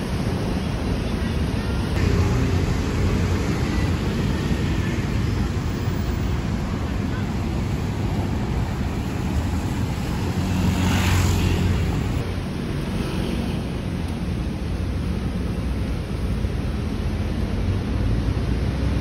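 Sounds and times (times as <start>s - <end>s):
traffic rumble: 0.0s - 19.0s
vehicle passing: 8.3s - 13.8s.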